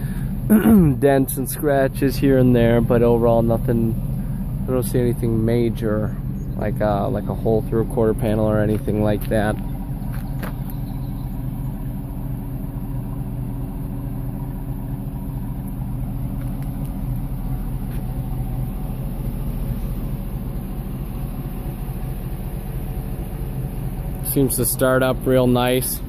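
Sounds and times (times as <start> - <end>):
car engine idling: 0.0 - 26.0.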